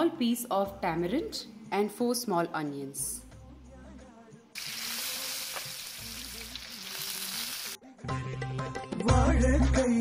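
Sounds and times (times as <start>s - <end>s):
music with indian instruments: 3.3s - 10.0s
fish sizzling in hot oil: 4.6s - 7.8s.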